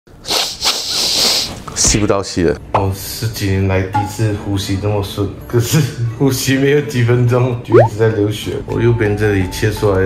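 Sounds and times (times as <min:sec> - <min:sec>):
man sniffing through blocked nose: 0:00.2 - 0:01.6.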